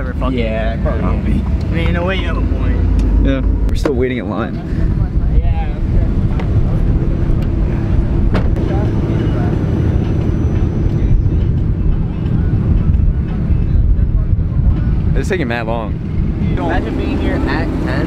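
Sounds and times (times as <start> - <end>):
car engines idling: 0.0 - 18.0.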